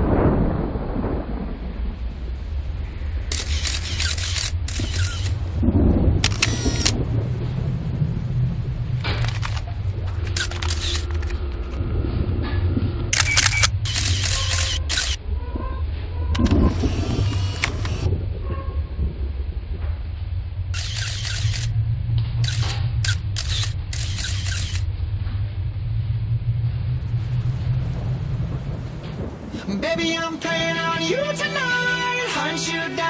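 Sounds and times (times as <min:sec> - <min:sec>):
deep low rumble drone: 0:00.0 - 0:29.7
camera shutter clicking: 0:03.3 - 0:05.4, 0:06.2 - 0:07.0, 0:09.1 - 0:09.7, 0:10.3 - 0:11.4, 0:13.2 - 0:15.2, 0:16.4 - 0:18.1, 0:20.8 - 0:21.7, 0:22.4 - 0:24.8.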